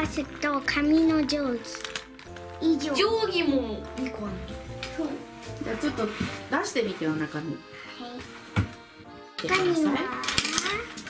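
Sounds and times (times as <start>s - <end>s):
background music: 0.0s - 11.0s
stationery clattering on a table: 9.4s - 11.0s.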